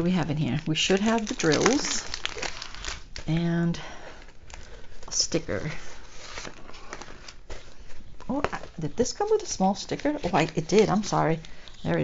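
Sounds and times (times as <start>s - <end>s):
canvas and paper rustling: 0.1s - 12.0s.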